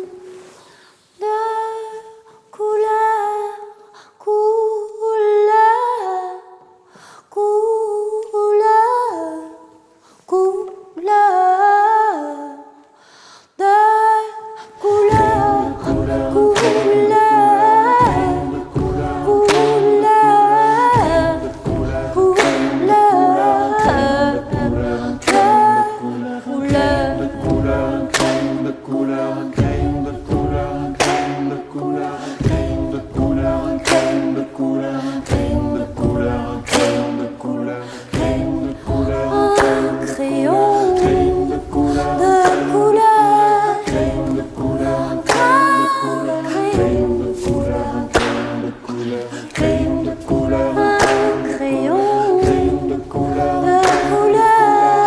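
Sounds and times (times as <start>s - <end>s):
a cappella choir singing: 0.0s - 55.0s.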